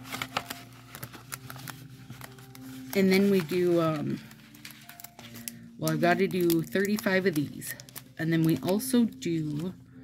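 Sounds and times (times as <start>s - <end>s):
paper rustling and tapping: 0.0s - 9.7s.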